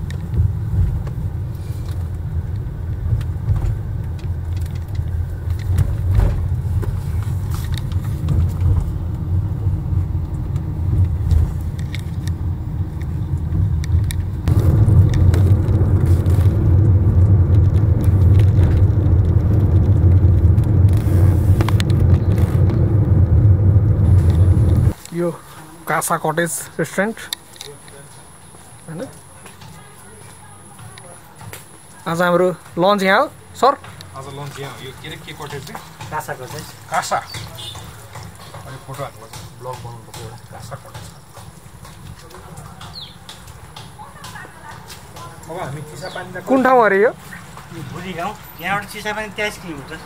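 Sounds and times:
car road and engine rumble: 0:00.0 - 0:50.0.

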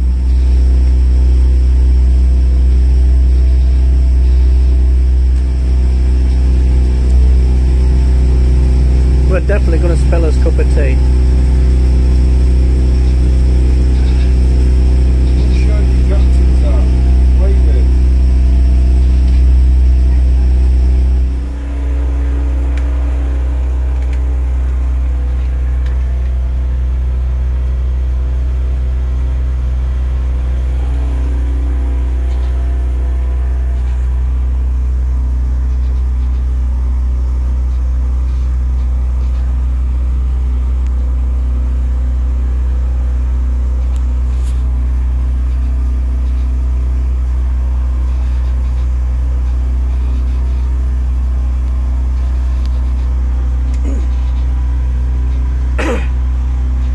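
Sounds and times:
boat motor droning: 0:00.0 - 0:56.9.

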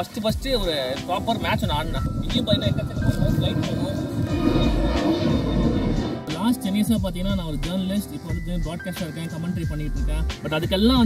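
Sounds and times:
faint background music: 0:00.0 - 0:11.0
jet airliner flying overhead: 0:01.2 - 0:06.6.

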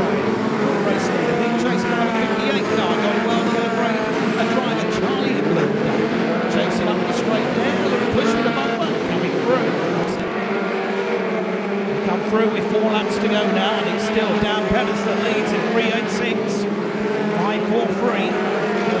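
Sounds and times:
racing car engines: 0:00.0 - 0:19.0.

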